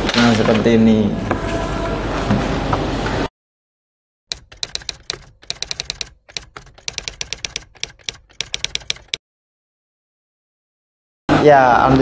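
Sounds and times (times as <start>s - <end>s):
typewriter keystrokes clicking: 4.3s - 9.2s.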